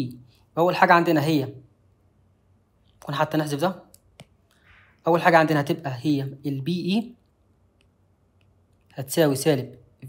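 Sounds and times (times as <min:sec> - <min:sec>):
person speaking: 0:00.0 - 0:01.8, 0:02.7 - 0:10.0
stylus tapping on tablet screen: 0:03.9 - 0:04.9.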